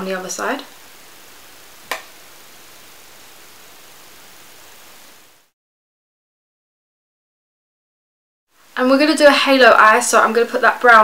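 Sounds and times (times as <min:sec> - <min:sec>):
faint room tone hiss: 0:00.0 - 0:05.5, 0:08.5 - 0:11.0.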